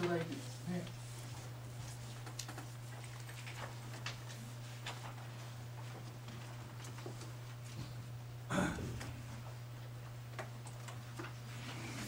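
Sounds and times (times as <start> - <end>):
papers being handled: 0.0 - 7.7.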